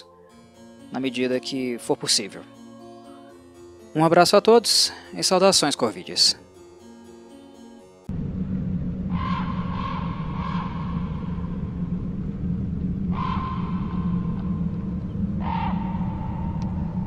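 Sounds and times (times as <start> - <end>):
steady low rumble: 8.1 - 17.0
crow cawing: 9.1 - 11.4, 13.1 - 14.3, 15.4 - 16.4.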